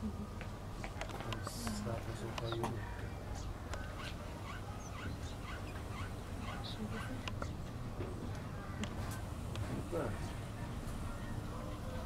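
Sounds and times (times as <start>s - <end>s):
animal squeaky calls: 3.9s - 7.2s.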